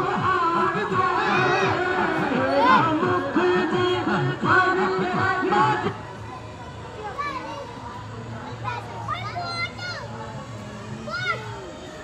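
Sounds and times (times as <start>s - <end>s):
children calling out: 8.6s - 11.8s.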